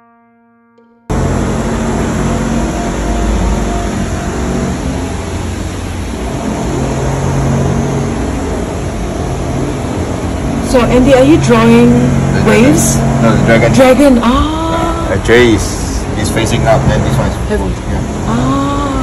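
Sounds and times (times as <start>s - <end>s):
constant rushing noise: 1.1s - 19.0s
low hum: 1.1s - 19.0s.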